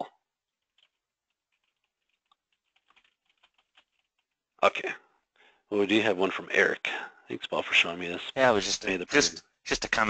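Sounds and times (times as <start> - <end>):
computer keyboard typing: 0.6 - 4.4.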